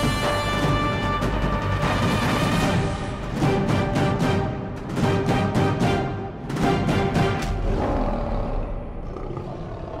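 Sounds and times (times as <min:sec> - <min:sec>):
lion roar: 0:07.5 - 0:10.0.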